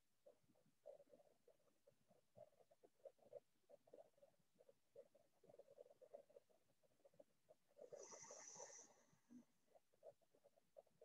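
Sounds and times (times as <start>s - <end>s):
faint breath: 7.8s - 9.4s.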